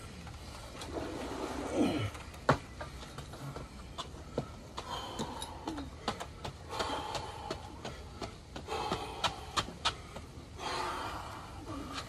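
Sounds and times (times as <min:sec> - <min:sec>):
man breathing hard: 0:03.2 - 0:12.0.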